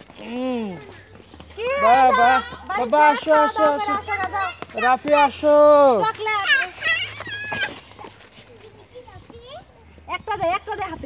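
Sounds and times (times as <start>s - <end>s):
toddler squealing: 6.4s - 7.9s.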